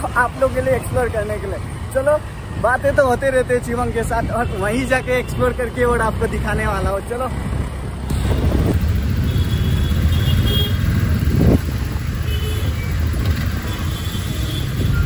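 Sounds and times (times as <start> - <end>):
engines and road noise rumbling: 0.0 - 15.0
distant vehicle horns: 9.1 - 10.9.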